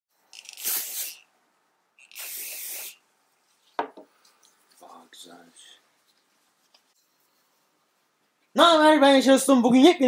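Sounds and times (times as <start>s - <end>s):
spray bottle hissing: 0.3s - 1.3s, 2.0s - 3.0s.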